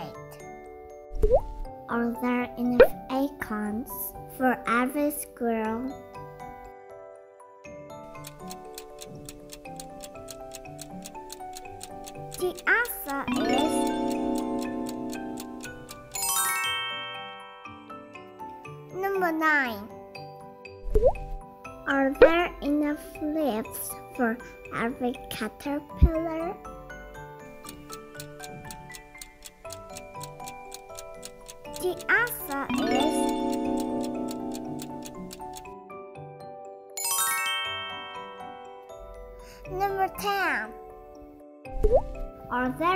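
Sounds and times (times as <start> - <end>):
light background music: 0.0 - 42.9
clock-like countdown ticking: 8.0 - 16.4, 26.0 - 35.8.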